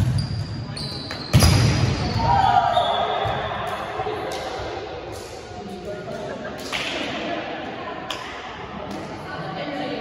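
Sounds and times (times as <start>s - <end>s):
murmur of voices: 3.2s - 10.0s.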